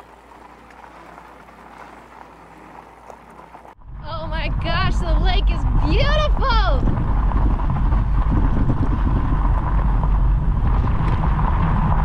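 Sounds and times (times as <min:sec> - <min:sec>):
bike tyres crunching on gravel: 0:00.0 - 0:03.8, 0:06.8 - 0:12.0
portable generator humming: 0:00.0 - 0:06.8.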